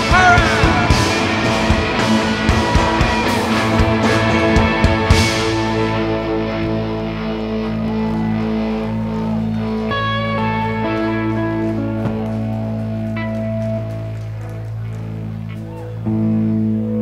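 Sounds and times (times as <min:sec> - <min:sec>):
lead guitar notes: 0:00.0 - 0:17.0
rock band sustained chords: 0:00.0 - 0:17.0.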